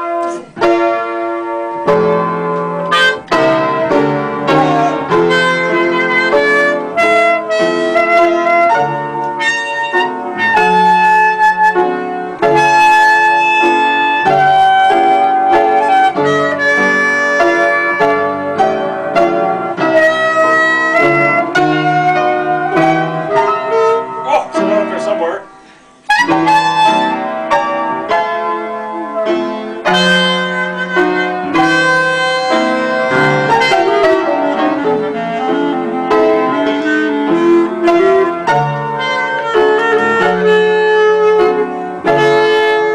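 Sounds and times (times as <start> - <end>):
clarinet melody: 0.0 - 42.9
piano chords: 0.0 - 42.9.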